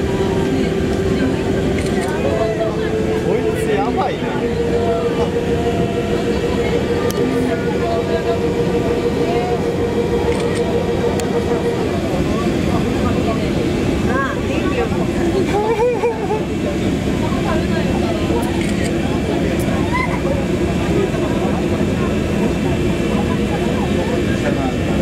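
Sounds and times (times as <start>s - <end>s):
level tone: 0.0s - 18.2s
faint passengers' voices: 0.0s - 25.0s
machinery rumble and hum: 0.0s - 25.0s.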